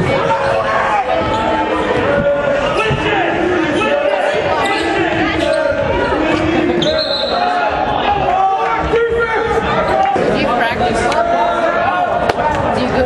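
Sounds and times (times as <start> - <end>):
people shouting: 0.0 - 13.0
referee whistle: 6.8 - 7.6.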